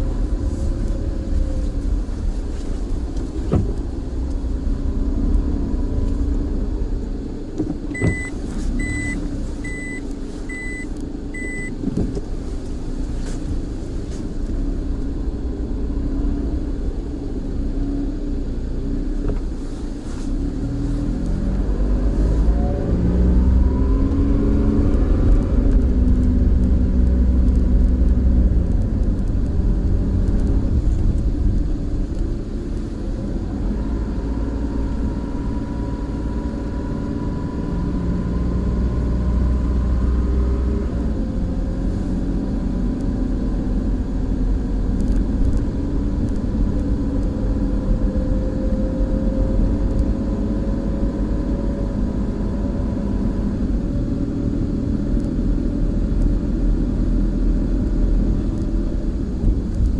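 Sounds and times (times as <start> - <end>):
car engine: 0.0 - 59.9
road noise inside car: 0.0 - 59.9
short high beeps: 8.0 - 11.8.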